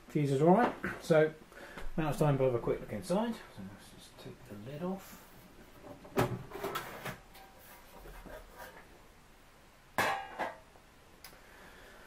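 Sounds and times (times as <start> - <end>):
sheet metal cover clattering: 5.8 - 8.9.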